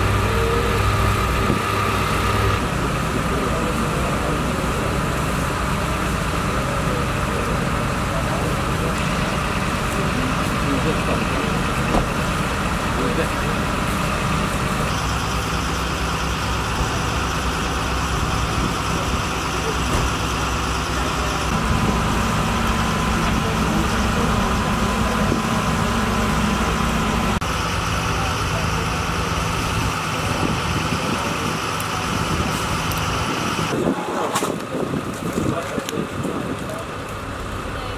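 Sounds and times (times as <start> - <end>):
power unit engine running: 0.0 - 37.9.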